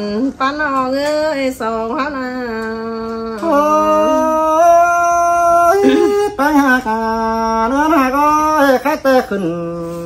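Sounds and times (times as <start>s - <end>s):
person singing unaccompanied: 0.0s - 10.0s.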